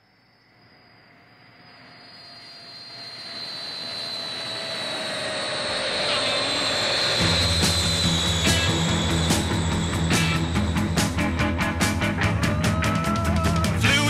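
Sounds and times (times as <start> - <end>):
jet airliner engine whine: 0.0 - 14.0
rock band playing: 7.2 - 14.0.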